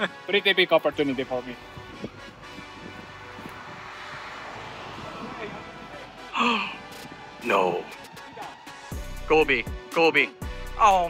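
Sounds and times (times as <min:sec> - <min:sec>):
faint background music: 0:00.0 - 0:11.0
wind blowing: 0:00.6 - 0:09.2.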